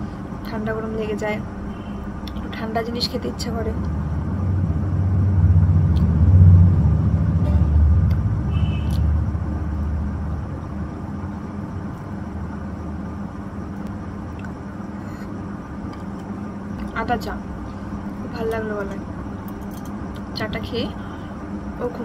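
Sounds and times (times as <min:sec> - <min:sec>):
low rumble: 0:03.8 - 0:10.8.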